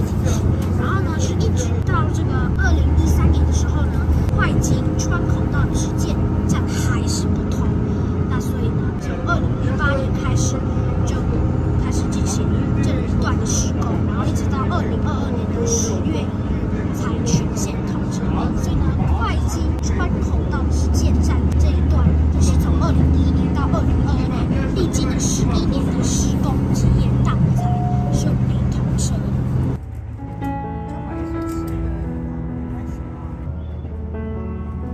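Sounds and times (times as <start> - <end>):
railcar engine drone: 0.0 - 34.9
track rumble: 0.0 - 34.9.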